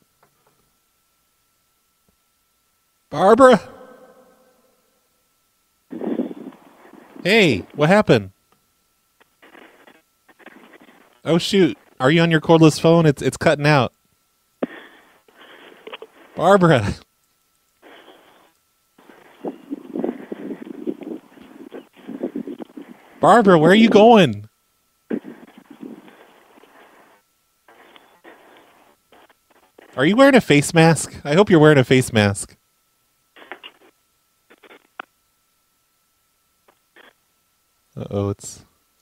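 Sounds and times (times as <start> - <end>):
choppy muffled telephone noise: 5.9 - 8.2, 9.1 - 13.9, 14.6 - 24.4, 25.0 - 31.0, 33.3 - 35.3, 36.6 - 37.3.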